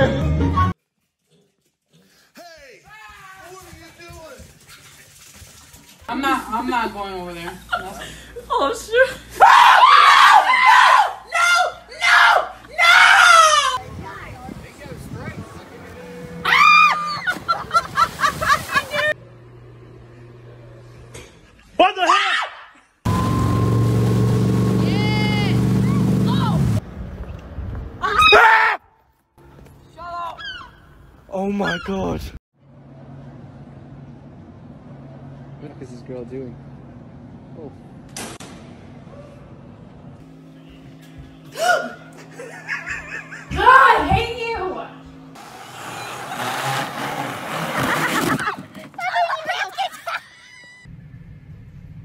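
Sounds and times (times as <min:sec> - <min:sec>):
person shouting: 0:41.6 - 0:42.1
plastic sled scraping down track: 0:45.4 - 0:49.8.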